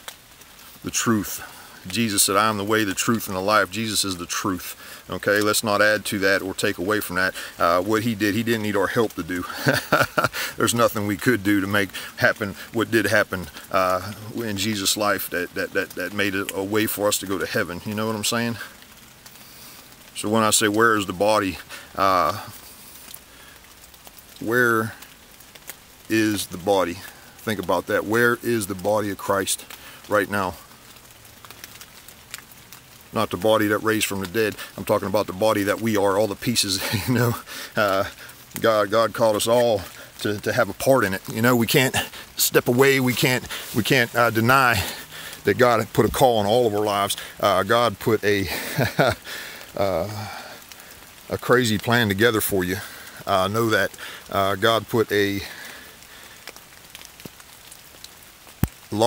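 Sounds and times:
light rain patter: 0.0 - 59.0
raindrops ticking: 0.0 - 59.0.

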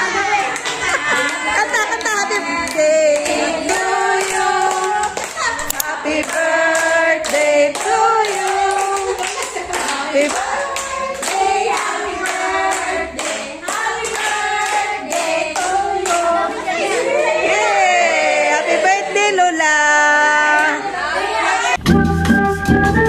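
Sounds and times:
group of voices singing: 0.0 - 22.5
hands clapping in a steady beat: 0.5 - 17.1.

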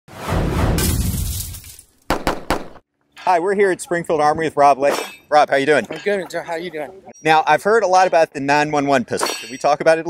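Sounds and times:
glass shattering: 0.8 - 2.1, 9.2 - 9.8.

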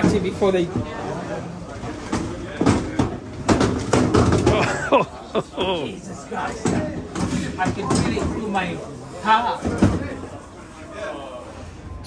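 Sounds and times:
voices talking in large room: 0.0 - 12.0.

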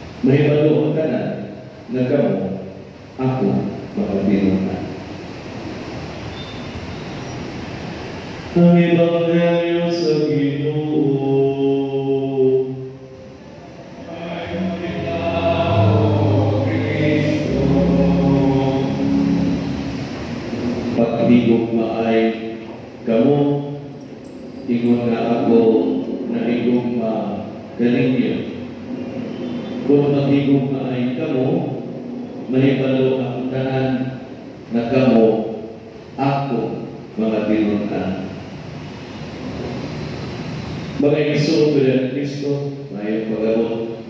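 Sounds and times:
man chanting: 8.6 - 20.0
choir singing held notes: 10.5 - 22.5
deep rumble: 14.0 - 21.4.

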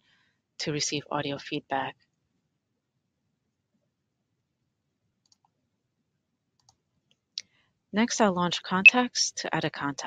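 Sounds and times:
faint computer mouse clicks: 5.2 - 5.5, 6.6 - 6.8.

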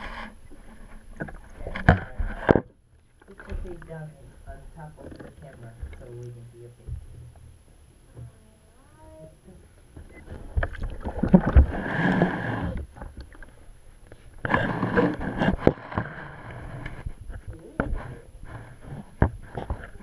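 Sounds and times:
bathwater splashing: 10.1 - 16.0.

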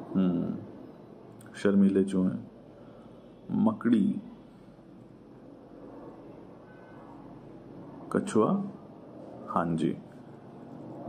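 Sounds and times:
man speaking: 0.0 - 0.7, 1.6 - 2.5, 3.5 - 4.3, 8.1 - 8.8, 9.5 - 10.0
faint background noise: 0.0 - 11.0.

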